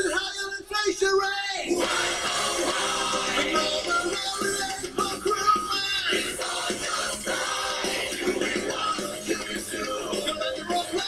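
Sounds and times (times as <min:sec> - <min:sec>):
song with sung vocals: 0:01.4 - 0:11.0.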